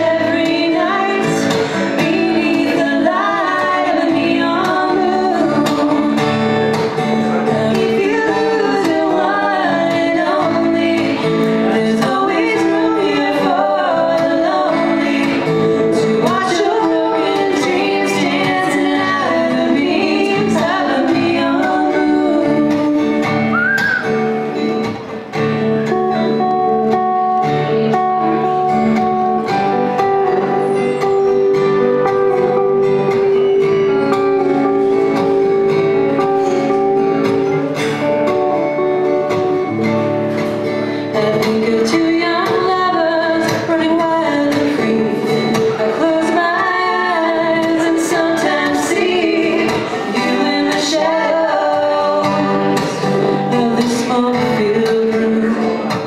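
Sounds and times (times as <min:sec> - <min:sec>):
women singing: 0:00.0 - 0:23.5, 0:41.0 - 0:56.0
electric guitar: 0:00.0 - 0:56.0
strummed acoustic guitar: 0:00.0 - 0:56.0.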